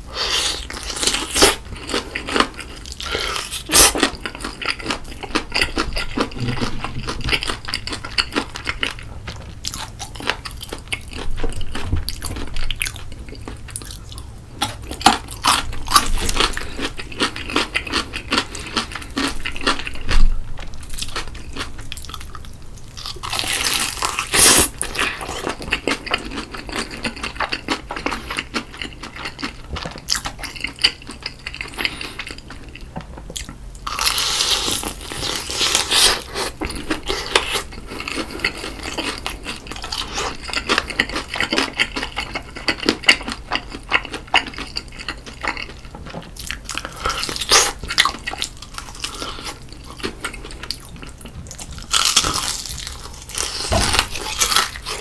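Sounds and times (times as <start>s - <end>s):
crunchy chewing of fried chicken: 0.0s - 55.0s.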